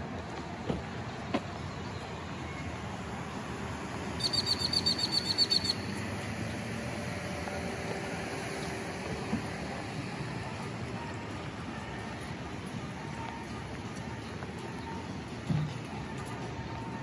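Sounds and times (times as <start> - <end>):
outdoor background noise: 0.0 - 17.0
bird chirping: 4.2 - 6.0.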